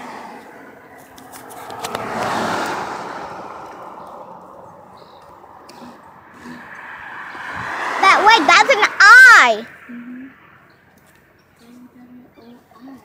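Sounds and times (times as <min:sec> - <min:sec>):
vehicles passing: 0:00.0 - 0:13.0.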